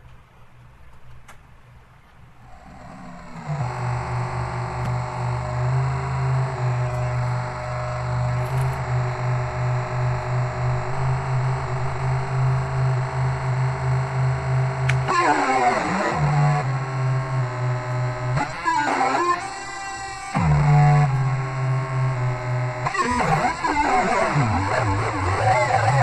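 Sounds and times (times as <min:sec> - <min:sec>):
low electronic drone: 0:02.4 - 0:26.0
higher electronic tones: 0:02.5 - 0:26.0.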